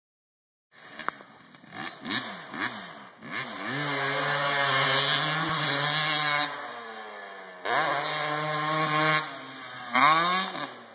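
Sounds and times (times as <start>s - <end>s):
dirt bike engine revving: 0.8s - 10.9s.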